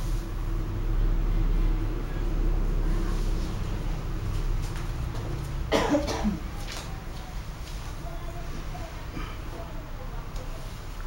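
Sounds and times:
low room hum: 0.0s - 11.0s
person coughing: 5.7s - 6.4s.

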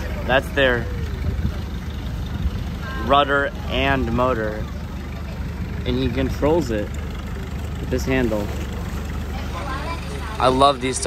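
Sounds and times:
boat engine rumbling: 0.0s - 11.0s.

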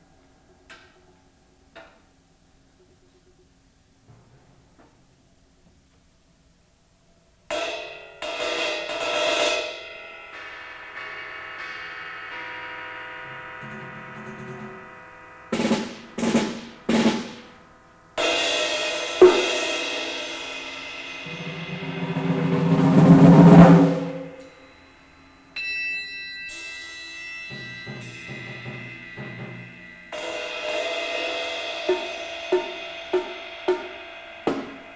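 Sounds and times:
sharp percussion strikes: 7.5s - 17.6s, 18.2s - 34.9s
cymbal crash: 7.5s - 34.9s
ringing struck percussion: 7.5s - 34.9s.

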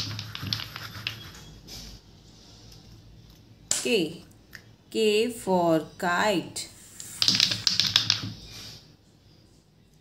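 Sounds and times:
letters clicking and tapping on board: 0.0s - 1.4s, 7.2s - 8.4s.

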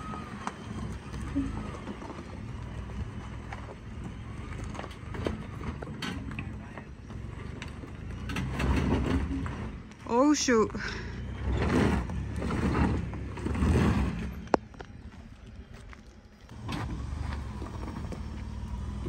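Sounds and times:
low engine rumble: 0.0s - 19.0s
tyres crunching on stones: 11.7s - 19.0s.

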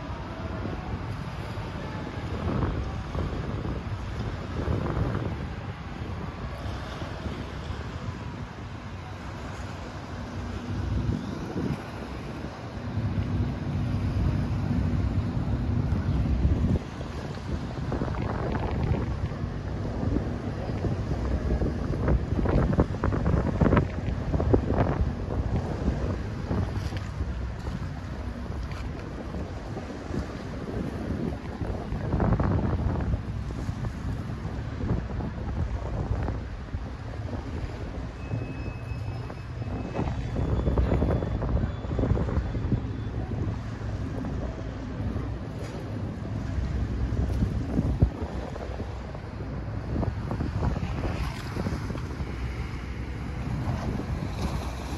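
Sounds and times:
boat engine droning: 0.0s - 54.9s
water washing against shore: 0.0s - 54.9s
wind buffeting microphone: 0.0s - 54.9s.

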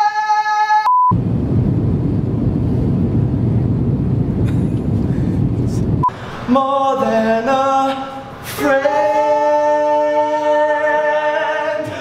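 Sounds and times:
airliner cabin rumble: 1.1s - 10.5s.

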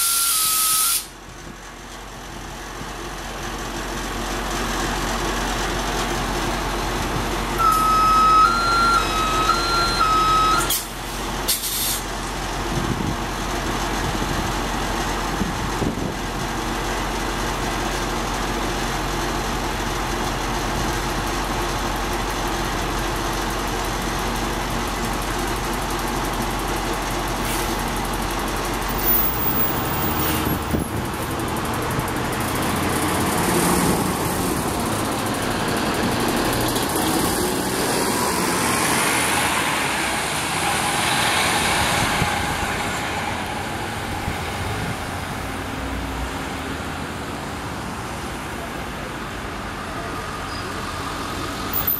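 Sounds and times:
bus doors closing: 0.0s - 1.2s, 7.6s - 12.4s
bus engine idling: 0.0s - 51.9s.

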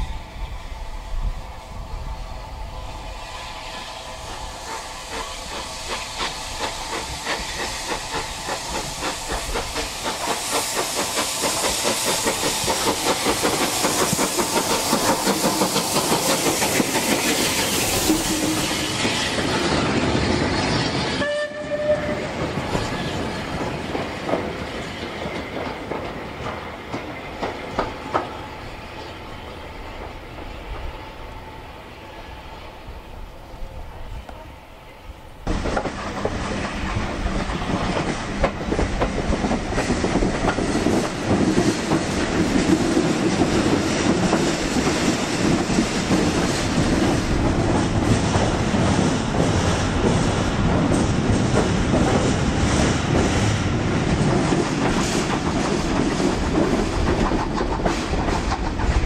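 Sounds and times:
steam locomotive running past: 0.0s - 59.0s
wheels clicking over rail joints: 53.1s - 59.0s.

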